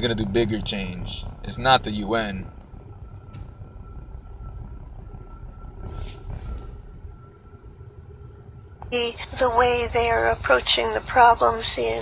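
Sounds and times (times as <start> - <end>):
car cabin rumble: 0.0 - 12.0
faint high whine: 0.0 - 12.0.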